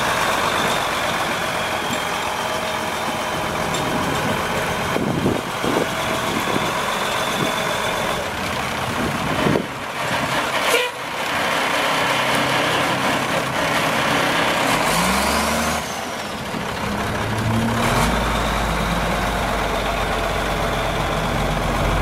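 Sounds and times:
diesel truck engine driving off: 0.0 - 22.0.

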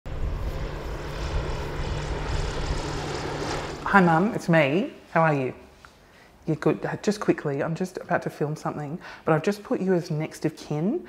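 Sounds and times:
aircraft engine rumbling: 0.0 - 4.5.

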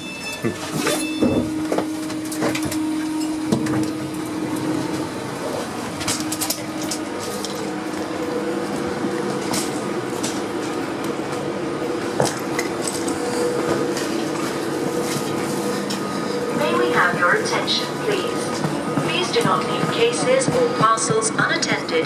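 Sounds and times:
electric train humming: 0.0 - 22.0.

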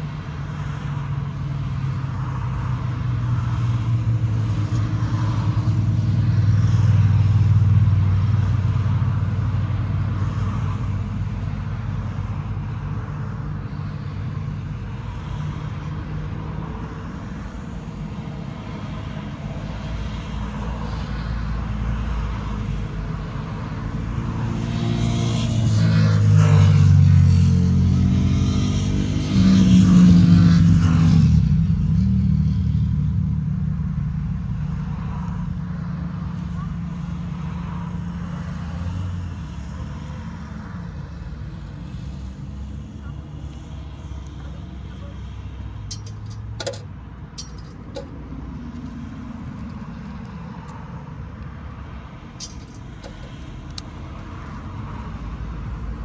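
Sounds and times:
vehicles driving past: 0.0 - 56.0.

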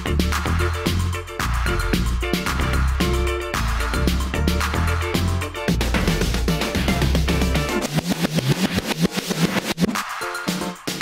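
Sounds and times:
rapid drum and bass hits: 0.0 - 11.0.

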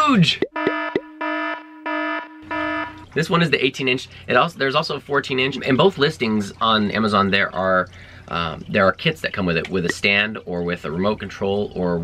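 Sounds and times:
electronic beeps: 0.4 - 3.1
steady buzzing tone: 0.4 - 3.1.

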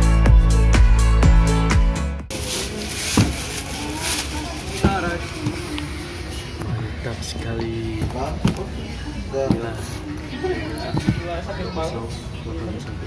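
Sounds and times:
electronic music with heavy beat: 0.0 - 2.3
rustling of cardboard boxes: 2.3 - 6.7, 7.8 - 10.1.

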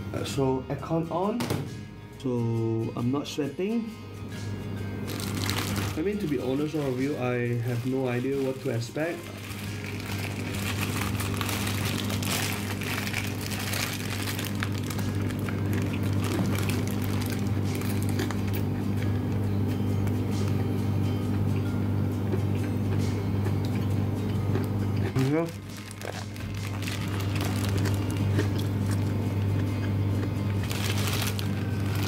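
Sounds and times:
music with sustained low tones: 0.0 - 32.0.

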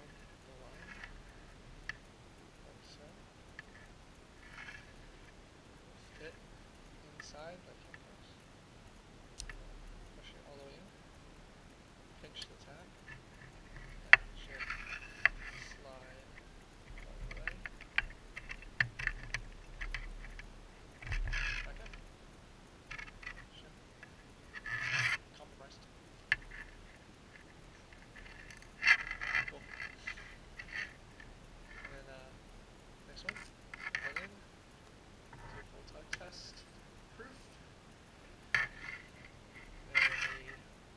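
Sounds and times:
cable scraping rasps: 0.0 - 2.0, 2.8 - 5.4, 12.2 - 22.1, 22.8 - 32.4, 33.1 - 34.4, 35.3 - 37.5, 38.4 - 40.7
steel cable clicking: 12.2 - 32.2, 33.1 - 34.4, 35.2 - 40.7.

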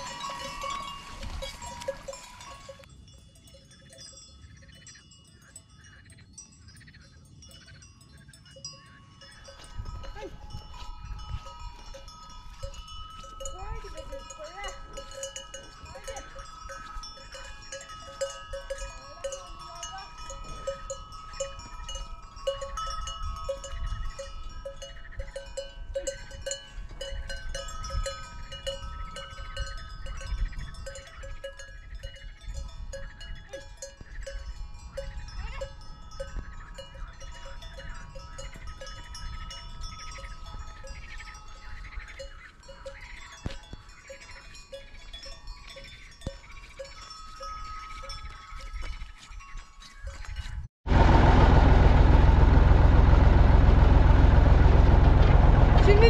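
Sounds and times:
cowbells clinking: 0.0 - 50.7, 55.7 - 56.0
low rumble: 50.9 - 56.0.

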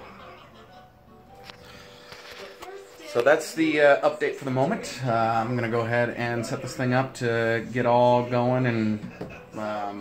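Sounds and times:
faint television music and voices: 0.0 - 10.0.

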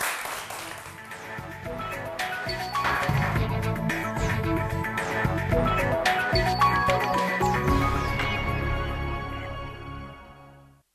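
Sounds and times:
studio applause: 0.0 - 1.5
quiz show theme music: 0.0 - 10.5.

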